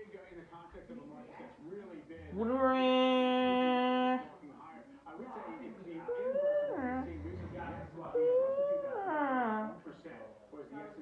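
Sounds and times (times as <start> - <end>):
voice howling: 6.2 - 9.7.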